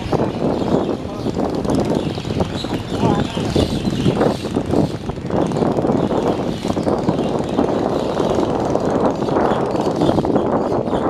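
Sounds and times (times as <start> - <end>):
boat engine drone: 0.0 - 11.0
noisy rush: 0.0 - 11.0.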